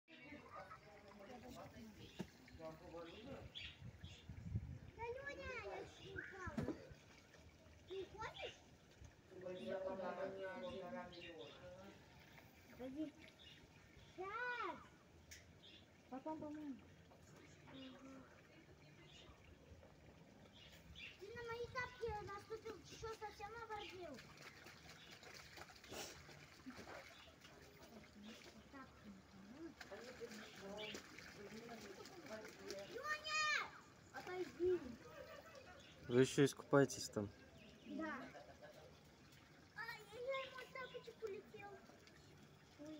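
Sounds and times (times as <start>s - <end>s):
children talking: 0.1s - 2.5s, 4.0s - 42.9s.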